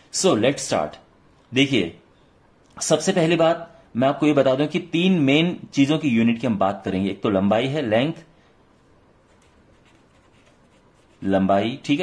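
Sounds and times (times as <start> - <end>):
marker pen scratching on paper: 9.2 - 11.3.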